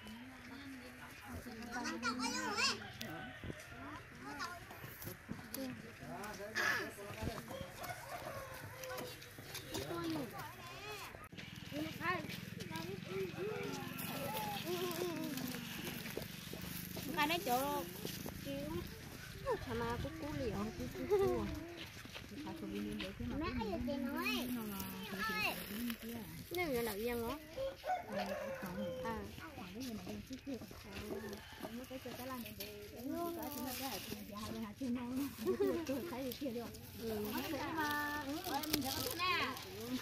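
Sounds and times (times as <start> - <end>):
people talking in high voices: 0.0 - 2.8, 17.0 - 31.1
rooster crowing: 7.4 - 9.2, 13.3 - 15.9, 27.5 - 29.4, 30.9 - 32.4.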